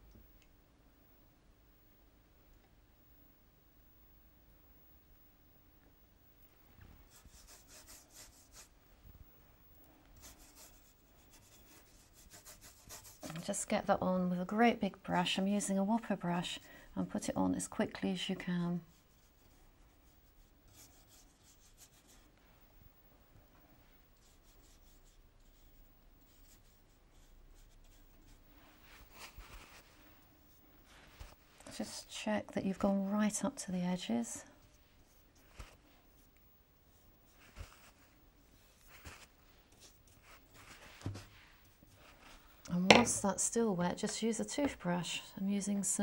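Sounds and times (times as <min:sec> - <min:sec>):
paintbrush swishing on paper: 0:07.0 - 0:08.8, 0:10.2 - 0:13.6, 0:18.5 - 0:22.4, 0:24.2 - 0:32.2, 0:34.6 - 0:42.6.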